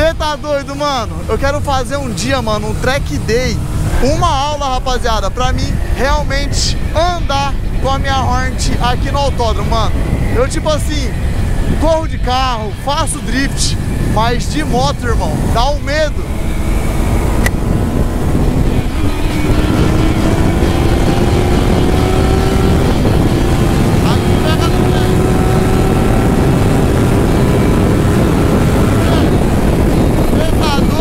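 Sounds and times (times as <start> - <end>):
motorcycle engine accelerating: 0.0 - 31.0
wind rush on microphone: 0.0 - 31.0.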